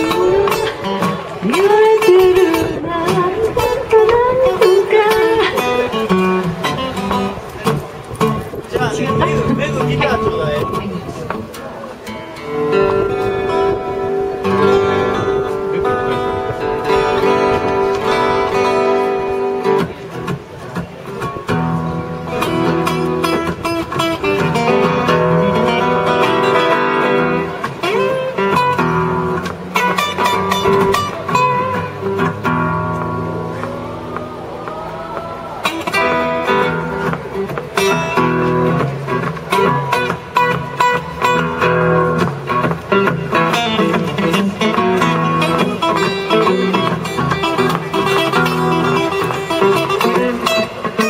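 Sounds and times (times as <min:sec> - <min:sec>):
acoustic guitars strummed: 0:00.0 - 0:51.0.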